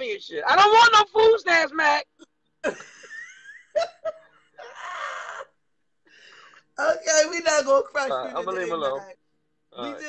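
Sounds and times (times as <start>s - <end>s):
laughter: 2.6s - 5.2s.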